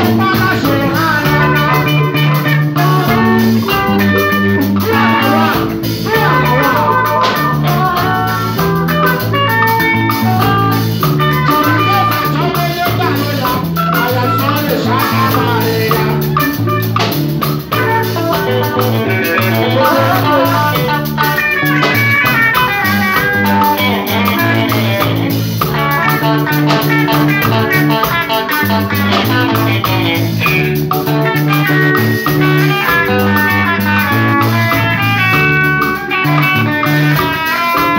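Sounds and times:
bass guitar walking line: 0.0 - 37.9
congas: 0.0 - 37.9
drum kit: 0.0 - 37.9
electric guitar: 0.0 - 37.9.

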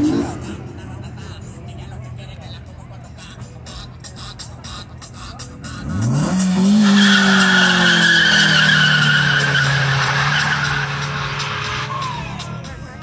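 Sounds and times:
car engine revving: 0.0 - 13.0
tyres squealing: 5.8 - 12.5.

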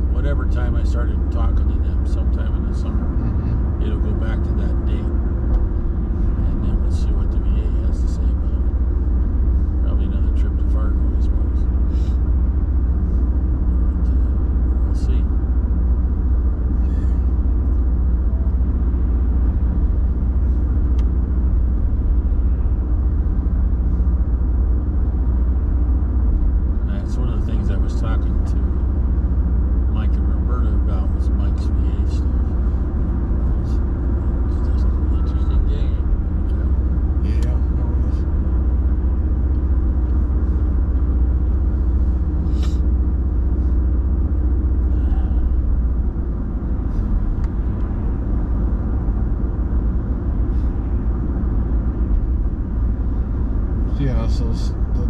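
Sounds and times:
engine and tyre rumble in cabin: 0.0 - 55.0.

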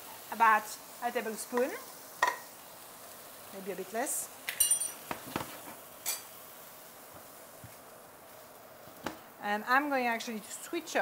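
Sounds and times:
hot pan hissing: 0.0 - 11.0
utensils clinking against frying pan: 4.5 - 5.1.

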